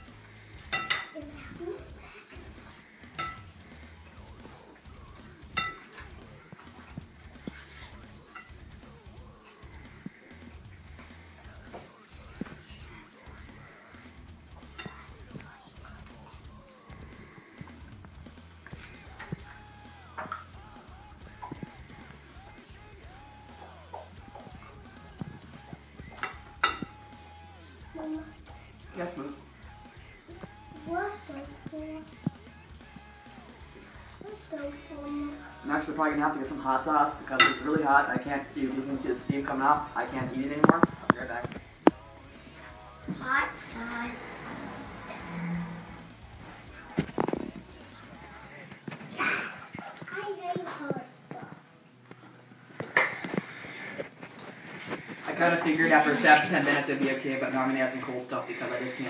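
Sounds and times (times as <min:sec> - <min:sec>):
background music: 0:00.0 - 0:59.0
fork clinking on glass bowl: 0:00.7 - 0:01.2, 0:03.2 - 0:03.5, 0:05.6 - 0:05.9, 0:26.2 - 0:27.0, 0:37.4 - 0:37.7.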